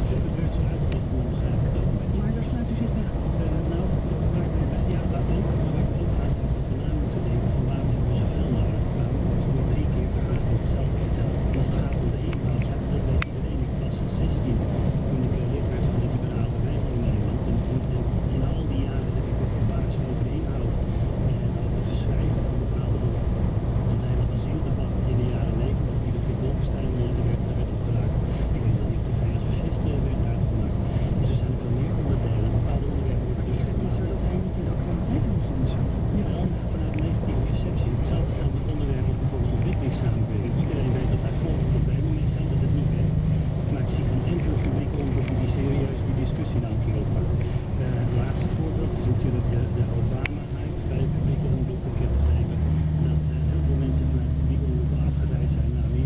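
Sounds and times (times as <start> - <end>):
truck engine and road noise: 0.0 - 56.0.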